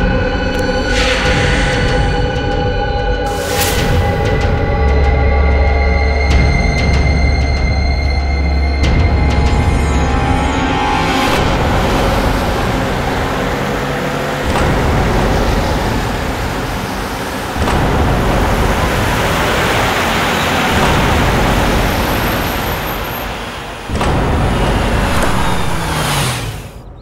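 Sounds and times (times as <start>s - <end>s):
car engine and tyre noise: 0.0s - 27.0s.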